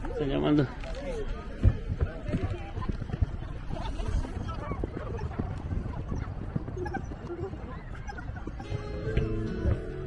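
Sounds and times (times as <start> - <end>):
footsteps on pavement: 0.0 - 10.0.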